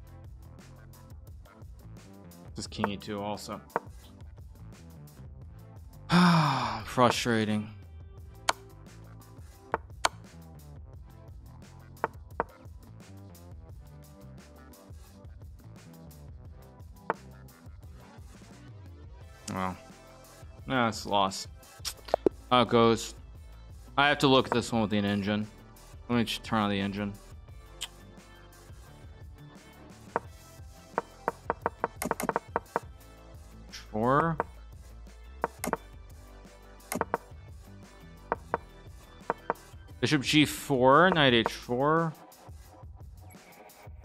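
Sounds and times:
quiet background music: 0:00.0 - 0:44.0
sharp clicks of chess moves: 0:31.0 - 0:32.8, 0:35.5 - 0:35.8, 0:36.9 - 0:37.2.

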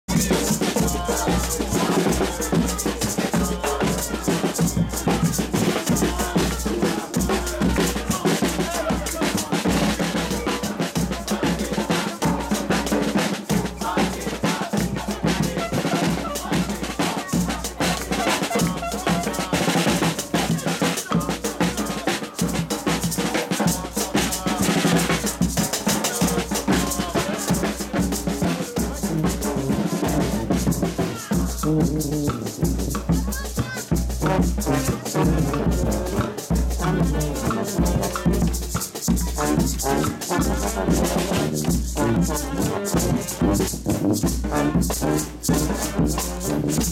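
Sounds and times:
brass band playing: 0:00.1 - 0:46.9
snare drum and cymbal beat: 0:00.1 - 0:46.9.

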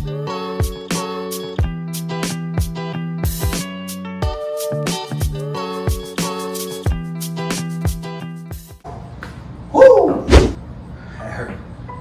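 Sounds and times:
background music: 0:00.0 - 0:08.8.

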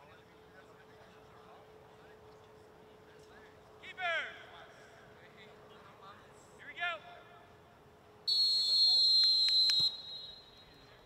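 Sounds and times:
referee's whistle blast: 0:08.3 - 0:10.6.

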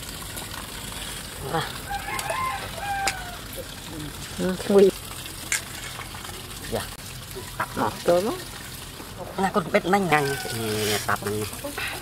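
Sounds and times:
rooster crowing: 0:01.9 - 0:03.5, 0:10.1 - 0:10.8.

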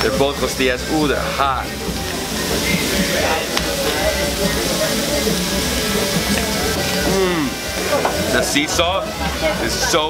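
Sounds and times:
people talking: 0:00.0 - 0:01.8, 0:02.6 - 0:10.0
background music: 0:00.0 - 0:10.0.

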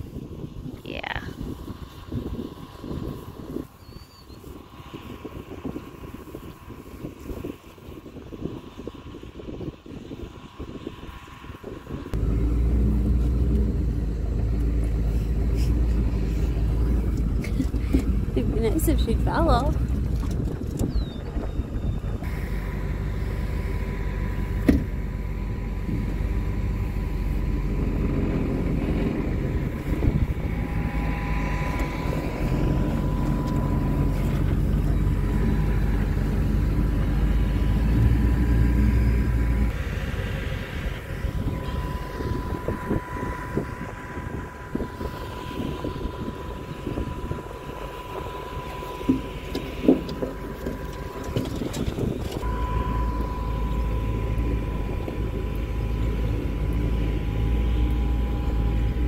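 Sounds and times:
thin steady whine: 0:00.0 - 0:59.0
truck engine and body rumble: 0:00.0 - 0:59.0.

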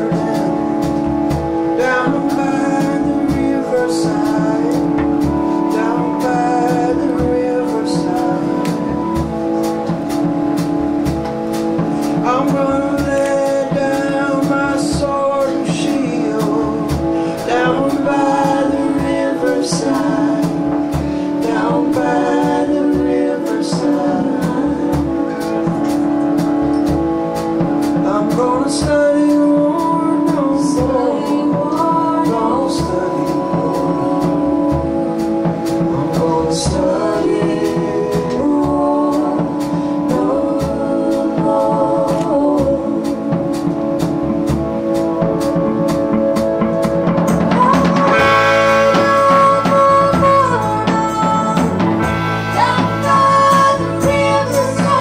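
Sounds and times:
man singing: 0:00.0 - 0:09.4, 0:11.9 - 0:25.9, 0:27.9 - 0:55.0
guitar: 0:00.0 - 0:55.0
piano: 0:00.0 - 0:55.0
steady drum beat: 0:00.0 - 0:55.0.

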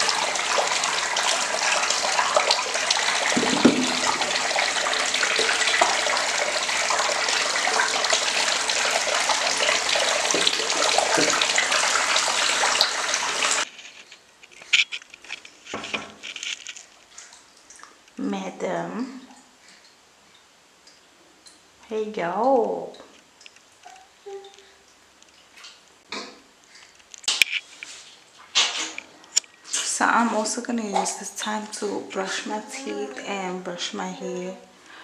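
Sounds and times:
quiet splashes in bathwater: 0:00.0 - 0:13.7
tap water running into bathtub: 0:00.0 - 0:13.9, 0:29.7 - 0:33.9.

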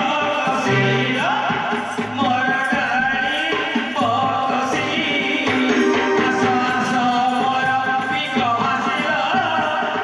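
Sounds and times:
steady drumming: 0:00.0 - 0:10.0
sung folk melody: 0:05.5 - 0:07.5.

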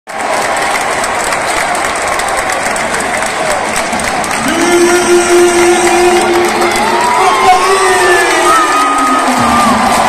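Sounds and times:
crowd clapping: 0:00.1 - 0:10.0
crowd voices: 0:00.1 - 0:10.0.

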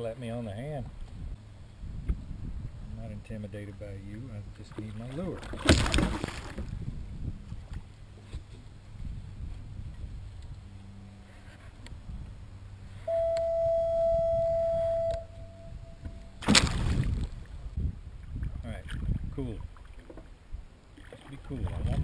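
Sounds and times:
loud splash: 0:05.4 - 0:06.7, 0:16.4 - 0:17.4.

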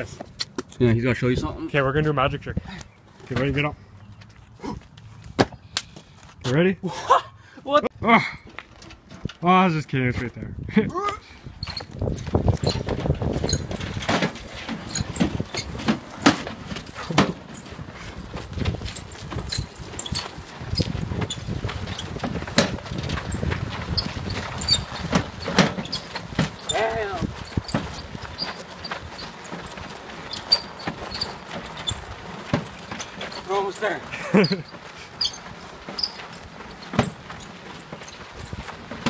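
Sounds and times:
tyres crunching over gravel: 0:11.6 - 0:39.0
footsteps on gravel: 0:11.9 - 0:25.4, 0:26.2 - 0:34.4.

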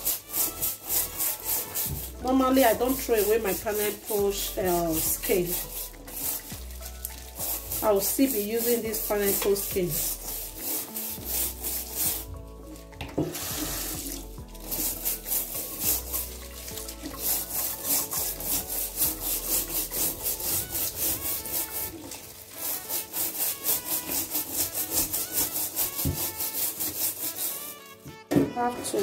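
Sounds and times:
brush scrubbing pineapple skin: 0:00.0 - 0:28.0.

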